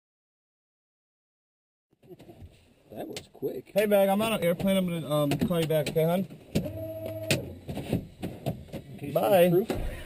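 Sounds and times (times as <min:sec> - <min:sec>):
switches clicking and knocking: 0:04.3 - 0:08.9.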